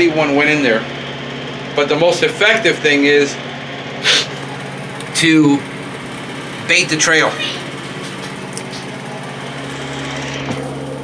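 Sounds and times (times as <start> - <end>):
small motor humming: 0.0 - 11.0.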